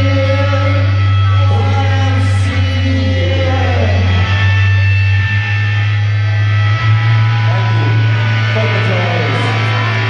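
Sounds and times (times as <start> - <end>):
electric guitars and bass droning: 0.0 - 10.0
sliding guitar tones: 0.0 - 10.0.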